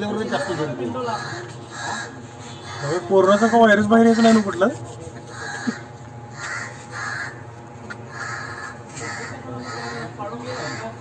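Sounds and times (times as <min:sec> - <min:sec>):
onlookers talking: 0:00.0 - 0:11.0.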